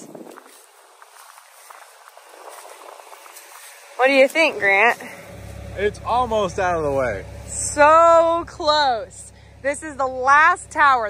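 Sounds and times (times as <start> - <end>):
light crackles: 0.0 - 5.8
footsteps on dry corn stalks: 0.0 - 7.8.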